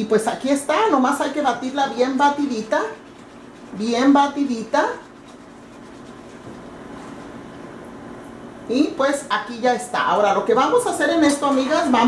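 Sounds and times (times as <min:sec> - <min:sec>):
whisking liquid in metal pot: 0:00.2 - 0:07.6.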